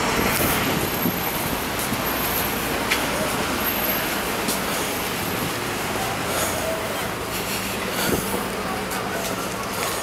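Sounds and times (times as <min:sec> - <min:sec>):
street traffic hiss: 0:00.0 - 0:10.0.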